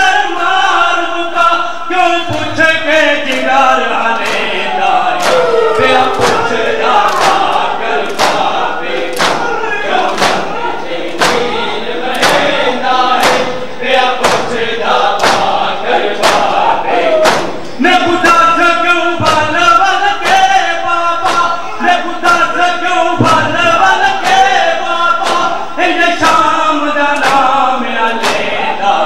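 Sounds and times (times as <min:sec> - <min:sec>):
men chanting in unison: 0:00.0 - 0:29.0.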